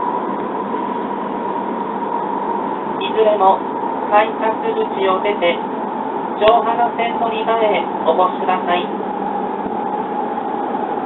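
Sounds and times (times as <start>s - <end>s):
train running noise: 0.0s - 11.0s
public address announcement: 2.9s - 9.5s.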